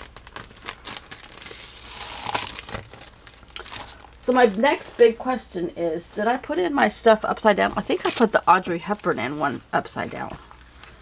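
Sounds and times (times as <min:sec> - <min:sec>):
plastic bag crinkling: 0:00.0 - 0:05.2, 0:07.9 - 0:09.4.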